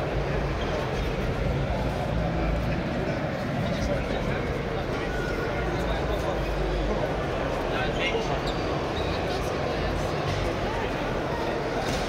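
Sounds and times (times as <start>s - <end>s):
indistinct crowd chatter: 0.0s - 12.0s.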